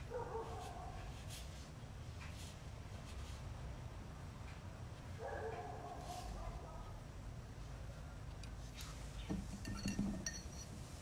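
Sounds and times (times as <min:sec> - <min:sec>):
brush scratching on paper: 0:00.4 - 0:03.5.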